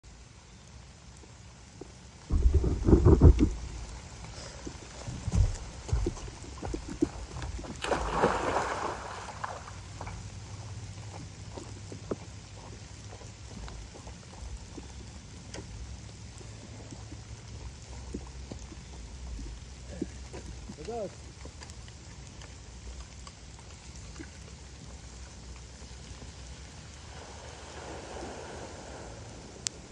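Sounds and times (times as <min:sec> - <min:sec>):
rain drops on leaves: 0:00.0 - 0:29.9
heavy low rumbles: 0:02.2 - 0:07.7.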